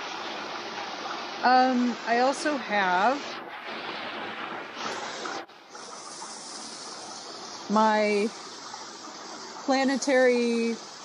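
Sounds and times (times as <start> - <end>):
stream running over rocks: 0.0 - 11.0.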